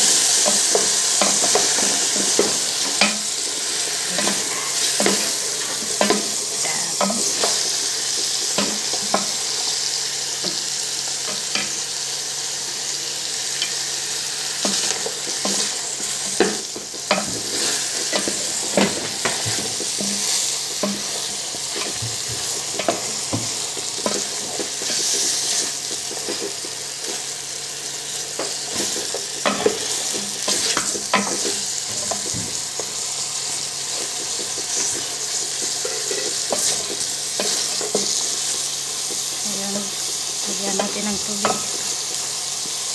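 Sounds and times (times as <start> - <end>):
meat sizzling in a pot: 0.0 - 42.9
wooden spoon knocking on pot: 14.7 - 25.0.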